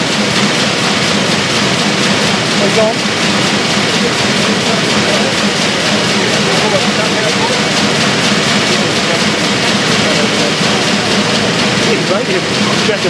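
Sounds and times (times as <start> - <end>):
faint murmur of voices: 0.0 - 13.0
printing press running: 0.0 - 13.0.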